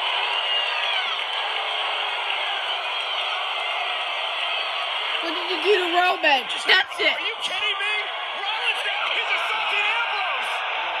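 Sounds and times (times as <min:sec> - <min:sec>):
arena crowd shouting: 0:00.0 - 0:11.0.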